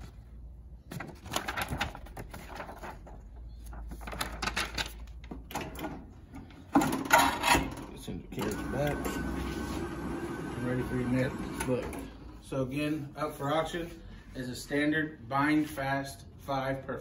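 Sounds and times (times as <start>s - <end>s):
book pages rustling: 0.0s - 5.4s.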